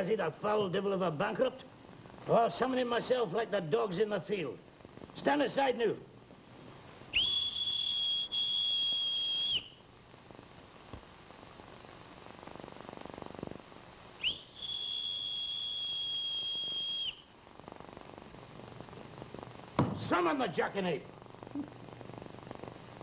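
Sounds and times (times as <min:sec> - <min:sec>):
high-pitched whistle blasts: 0:07.2 - 0:09.8, 0:14.2 - 0:17.3.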